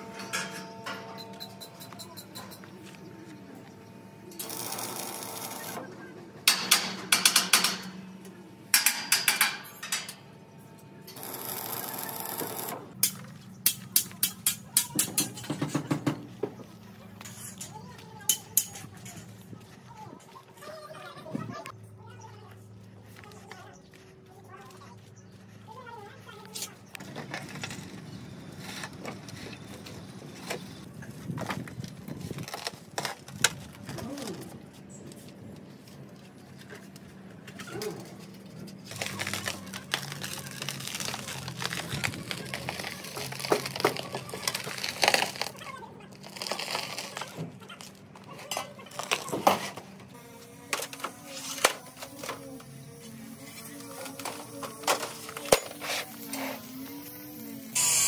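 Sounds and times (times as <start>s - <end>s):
crackling welding hiss: 53.0s - 58.0s.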